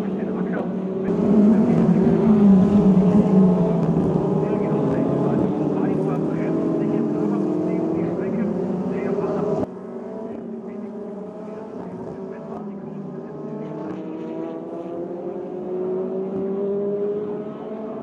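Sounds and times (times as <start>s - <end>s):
racing car engines at high revs: 0.0s - 18.0s.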